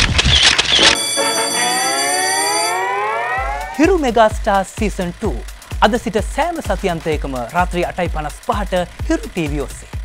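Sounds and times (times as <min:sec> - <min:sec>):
electronic rising tone: 0:00.0 - 0:04.0
man speaking: 0:03.8 - 0:09.9.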